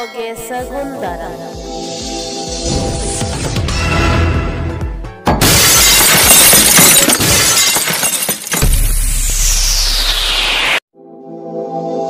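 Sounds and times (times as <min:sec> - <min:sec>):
music: 0:00.0 - 0:05.7, 0:10.9 - 0:12.0
glass shattering burst: 0:05.4 - 0:10.4.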